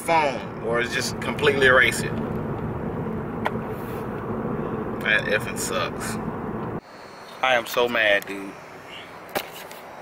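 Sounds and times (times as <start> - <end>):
car interior rumble: 0.1 - 6.8.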